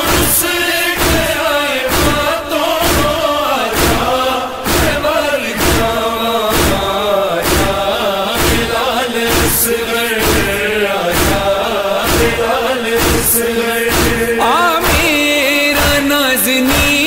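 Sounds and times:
sharp chest-beating thumps: 0.0s - 15.2s
men chanting a lament: 0.0s - 17.0s.

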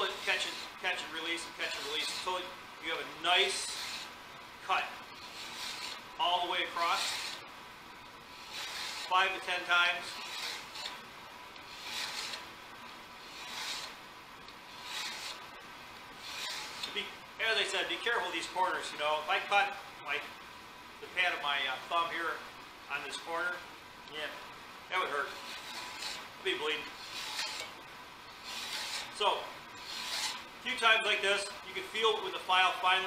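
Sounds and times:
file rasping on steel edge: 0.0s - 2.5s, 3.4s - 4.1s, 5.2s - 7.4s, 8.3s - 11.0s, 11.6s - 12.5s, 13.2s - 14.0s, 14.7s - 15.4s, 16.2s - 17.0s, 25.2s - 27.7s, 28.3s - 29.2s, 29.8s - 30.5s.

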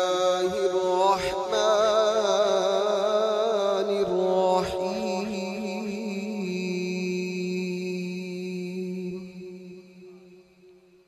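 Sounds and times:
man reciting melodically: 0.0s - 10.6s.

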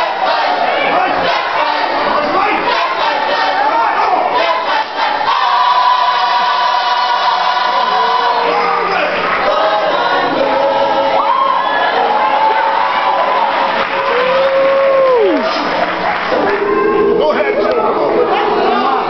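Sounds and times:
children's choir singing: 0.0s - 13.8s.

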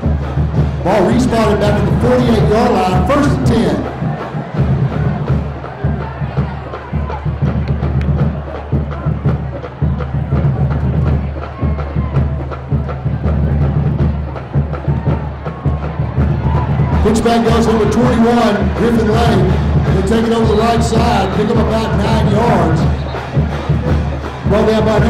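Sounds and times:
band music: 0.0s - 25.0s
crowd noise: 0.0s - 25.0s
drum hits: 0.0s - 25.0s.

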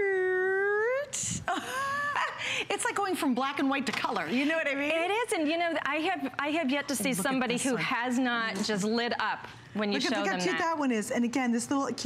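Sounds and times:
woman speaking: 2.7s - 11.8s.

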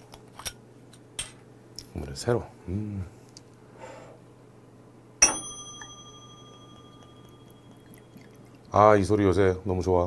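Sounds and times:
brass cup ringing: 5.2s - 8.8s.

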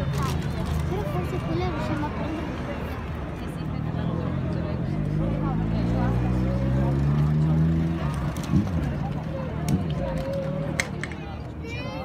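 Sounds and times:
crowd chatter: 0.0s - 12.0s
vehicle engine speeding up: 5.1s - 9.0s.

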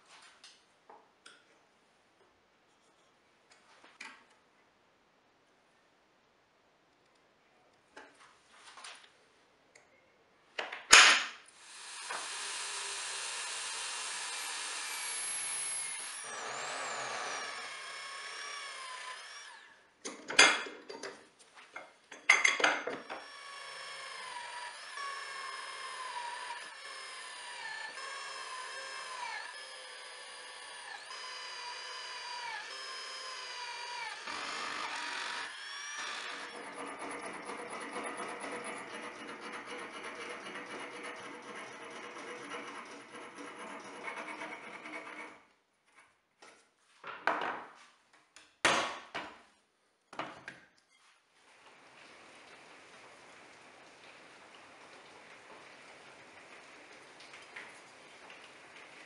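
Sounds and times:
electric drill drilling metal: 11.6s - 19.7s, 23.0s - 45.4s
hand file rasping on metal: 36.3s - 45.4s.

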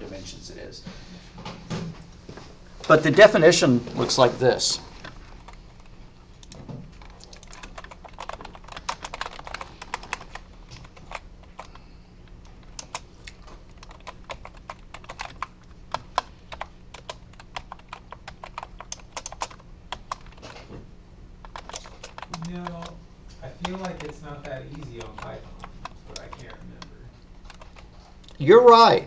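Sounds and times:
computer keyboard typing: 5.0s - 20.6s, 21.4s - 27.9s.

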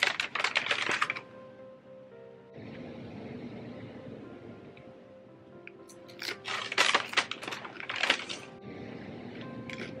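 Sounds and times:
food packaging crinkling: 0.0s - 1.2s, 6.1s - 8.5s
soft background music: 0.0s - 10.0s.

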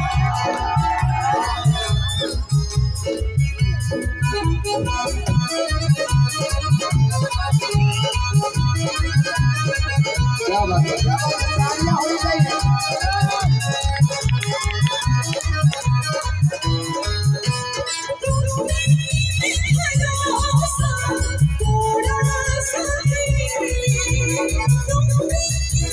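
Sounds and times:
electronic keyboard melody: 0.0s - 25.9s.

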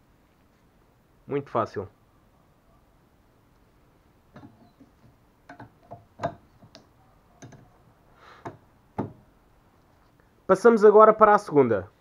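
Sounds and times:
plastic clicks and knocks: 4.3s - 7.7s.

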